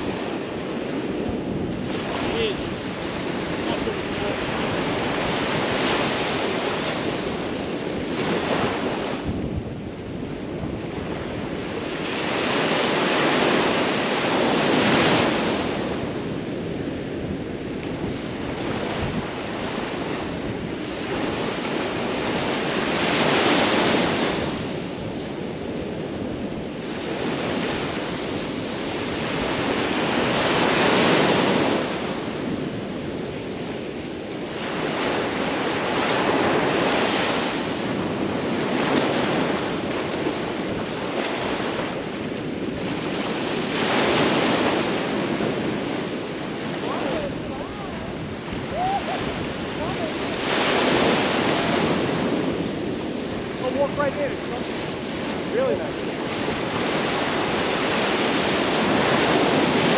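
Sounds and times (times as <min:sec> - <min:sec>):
waves breaking on sandy beach: 0:00.0 - 0:59.9
wind rumble on microphone: 0:00.0 - 0:59.9.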